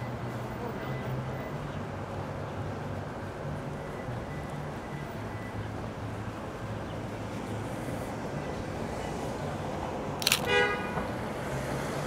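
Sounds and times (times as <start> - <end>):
city street traffic: 0.0 - 12.0
car horn toot: 10.3 - 11.0.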